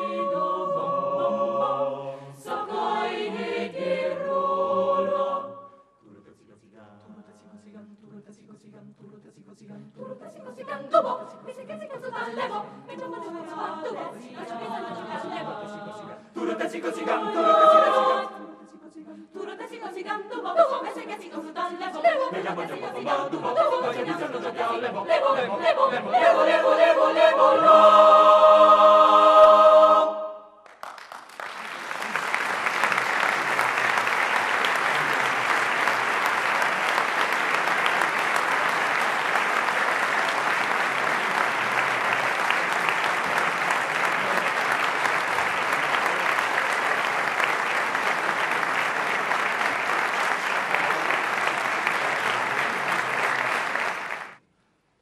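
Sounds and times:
choir holding chord: 0.0s - 5.9s, 10.0s - 30.6s
audience applauding: 30.6s - 54.4s.

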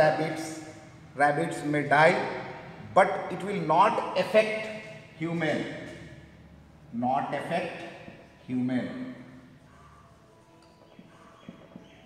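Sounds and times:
marker squeaking on whiteboard: 9.6s - 12.0s.

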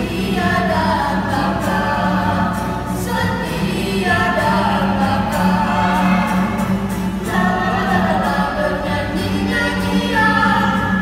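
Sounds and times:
woman and children singing a hymn: 0.0s - 6.6s, 7.2s - 11.0s
acoustic guitar: 0.0s - 11.0s.

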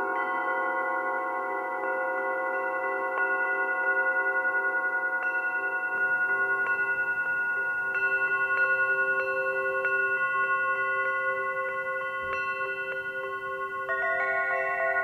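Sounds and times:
singing bowls struck with mallet: 0.0s - 15.0s.

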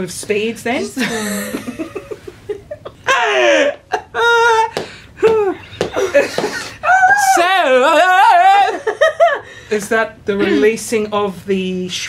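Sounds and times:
woman laughing: 0.8s - 7.2s, 10.4s - 10.7s.

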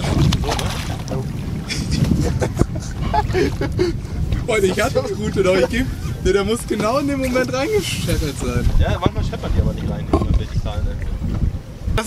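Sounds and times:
choppy water against boat hull: 0.0s - 12.0s
wind buffeting microphone: 0.0s - 12.0s.

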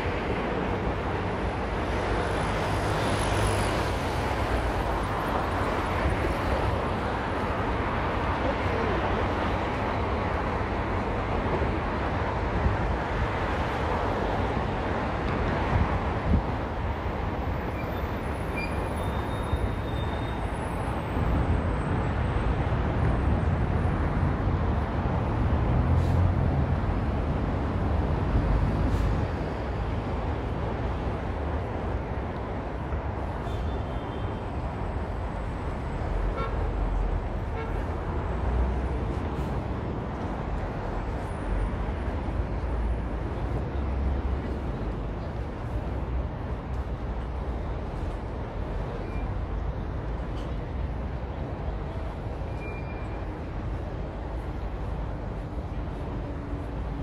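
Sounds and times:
deep traffic rumble: 0.0s - 57.0s
road traffic: 0.0s - 57.0s.

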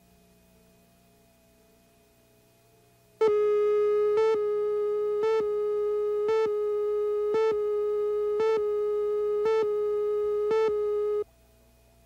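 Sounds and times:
faint hum: 0.0s - 12.0s.

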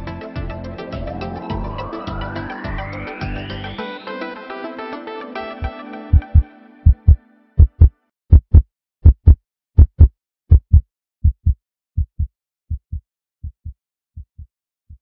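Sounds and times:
music: 0.0s - 8.1s
heartbeat thumps: 6.2s - 15.0s.

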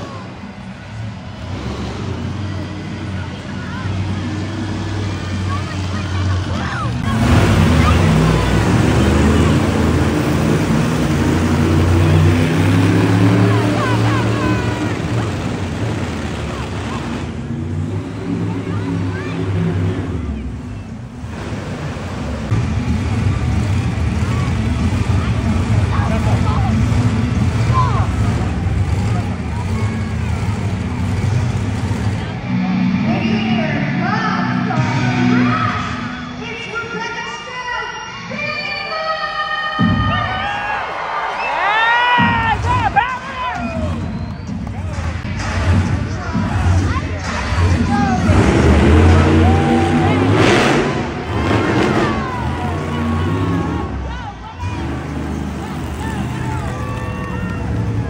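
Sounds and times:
monster truck engines revving: 0.0s - 58.0s
voices: 0.0s - 58.0s.

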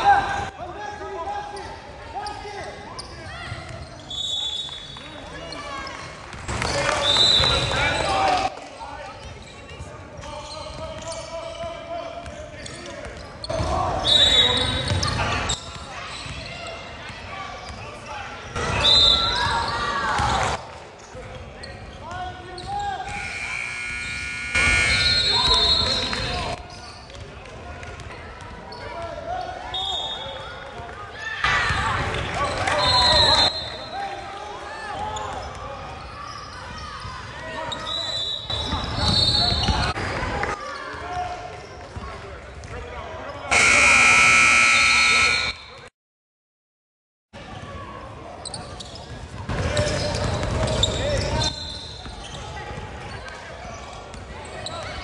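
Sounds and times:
sneakers squeaking: 1.5s - 8.5s, 9.1s - 27.2s, 34.9s - 40.0s, 48.3s - 55.0s
scoreboard buzzer: 23.1s - 25.7s, 43.5s - 45.7s
spectators calling out: 43.5s - 45.7s.

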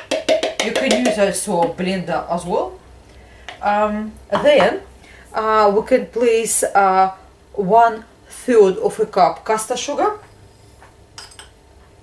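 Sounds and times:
metal spoon clinking against bowl: 11.2s - 11.6s.

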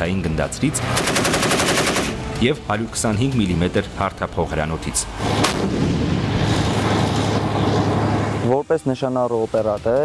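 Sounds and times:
machine gun burst: 0.9s - 2.2s.

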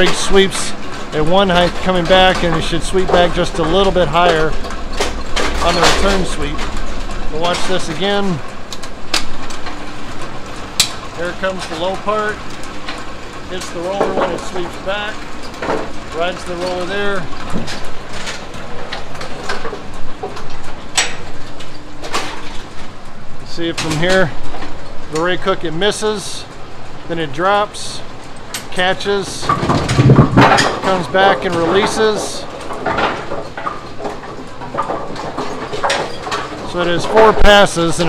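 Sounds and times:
machine metallic clanks and knocks: 0.0s - 27.2s, 27.8s - 38.0s.

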